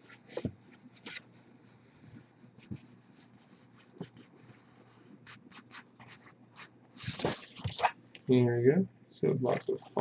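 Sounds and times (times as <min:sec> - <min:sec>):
soft scratches and rustles: 0:00.0 - 0:07.9.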